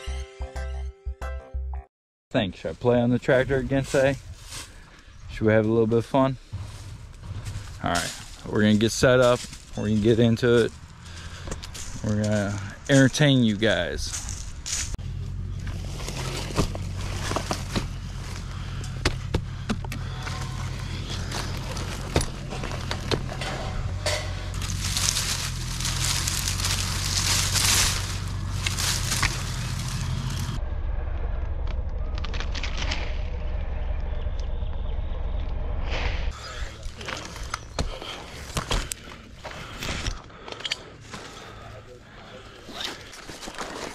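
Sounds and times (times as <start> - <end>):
steady low hum: 3.0 - 42.6
leaves and twigs rustling: 3.3 - 30.6, 36.4 - 43.9
clicks and knocks on branches: 15.6 - 30.6, 36.7 - 41.4.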